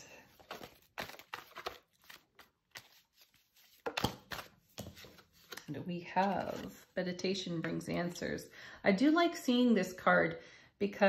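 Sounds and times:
cards flicking and tapping: 0.4 - 5.7.

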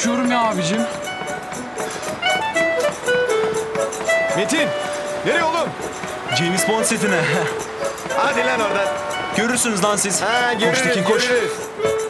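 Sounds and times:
melody of held notes: 0.0 - 12.0
quick percussive beat: 0.0 - 12.0.

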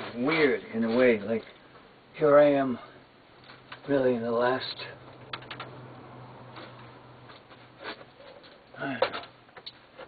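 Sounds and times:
steady low hum: 0.0 - 9.6.

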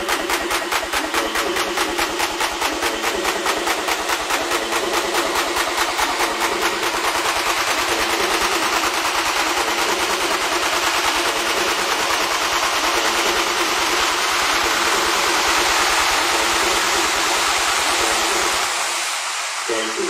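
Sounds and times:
hissing noise wash: 0.0 - 20.0
techno beat with kick and hi-hats: 0.0 - 20.0.

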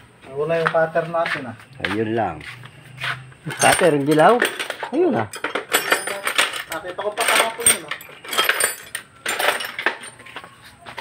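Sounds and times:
metal tools clinking and scraping: 2.9 - 11.0.

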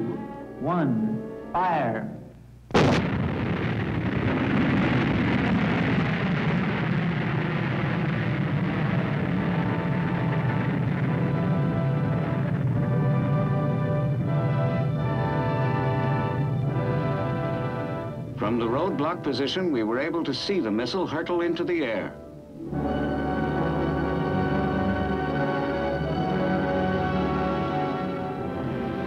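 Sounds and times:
music with held notes: 0.0 - 2.0, 11.1 - 29.0
rocket launch blast: 2.7 - 14.4
rocket rumble: 2.7 - 21.9.

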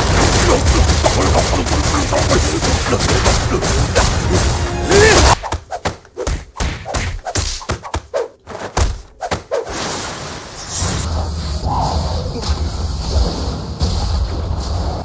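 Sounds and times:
background music: 0.4 - 5.4.

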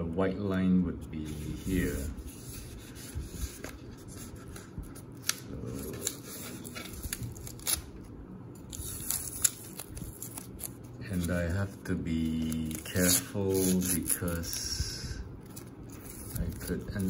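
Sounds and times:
tape peeling with crinkling: 1.3 - 14.7, 15.4 - 17.0.

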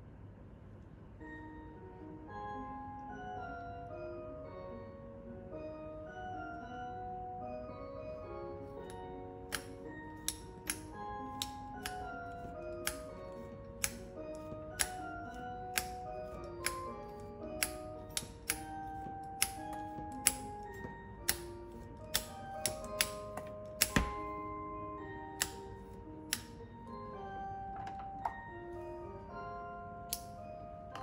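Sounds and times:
light mallet melody: 1.2 - 31.0.

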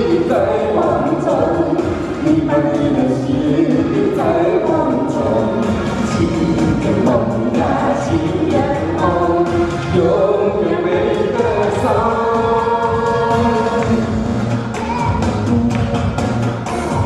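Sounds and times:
man singing: 0.0 - 14.2
woman singing: 0.0 - 14.2.

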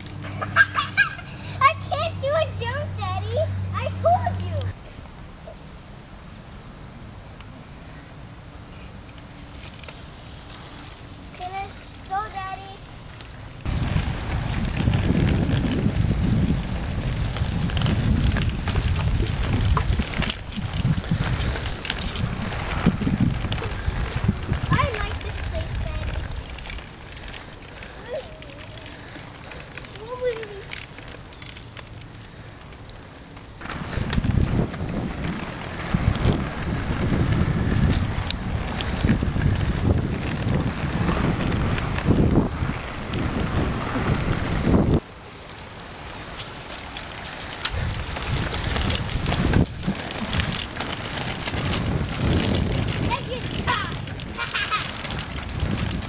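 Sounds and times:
bicycle tyres crackling on trail: 0.0 - 56.0
wind buffeting microphone: 13.6 - 56.0.

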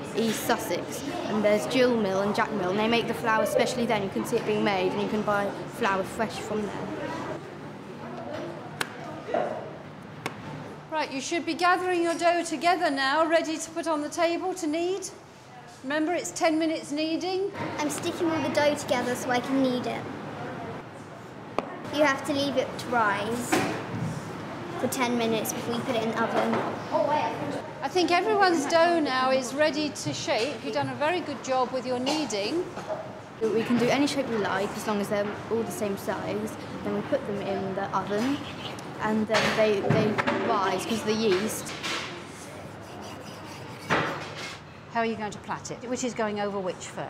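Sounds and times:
classroom room noise: 0.0 - 47.0
hands rubbing bread dough: 42.3 - 44.4.

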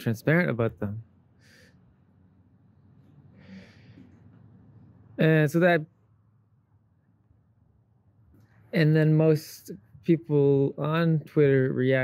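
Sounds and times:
faint breath: 1.3 - 2.1, 3.1 - 4.4.

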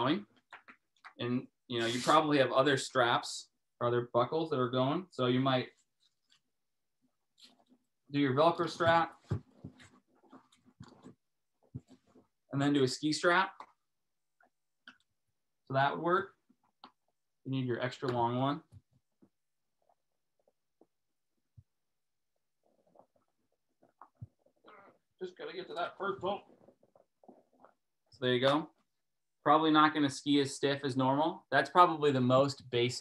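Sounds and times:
strap rubbing on plastic boot: 1.8 - 2.2.

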